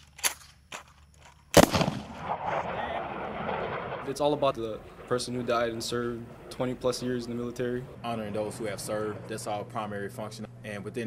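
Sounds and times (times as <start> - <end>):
aircraft engine flying over: 2.1 - 11.0.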